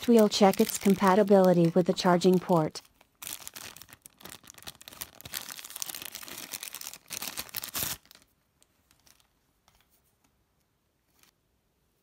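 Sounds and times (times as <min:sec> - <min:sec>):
plastic bag crinkling: 0:00.0 - 0:09.3.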